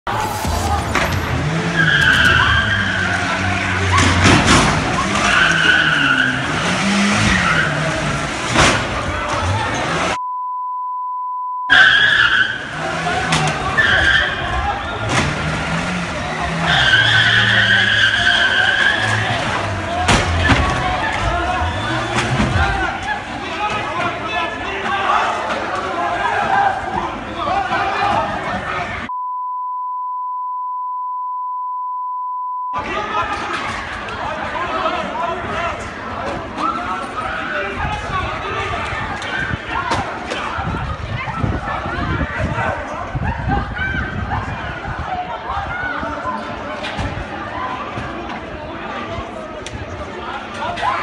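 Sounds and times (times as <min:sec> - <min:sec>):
crashes of impact: 0:00.1 - 0:03.1
tyres squealing: 0:00.1 - 0:08.3, 0:11.7 - 0:23.1
car engine revving: 0:00.1 - 0:10.2, 0:14.9 - 0:23.0
censor bleep: 0:10.2 - 0:11.8, 0:29.1 - 0:32.8.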